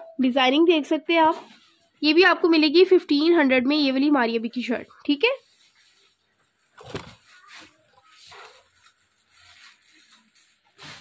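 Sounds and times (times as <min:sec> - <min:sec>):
cloth and plastic wrapping rustling: 0:00.6 - 0:11.0.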